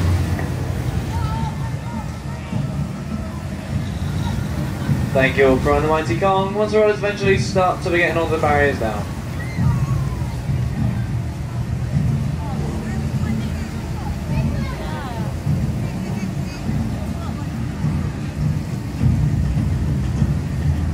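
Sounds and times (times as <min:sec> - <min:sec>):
faint voices of riders: 0:00.0 - 0:20.0
ride rolling along track rumble: 0:00.0 - 0:20.9.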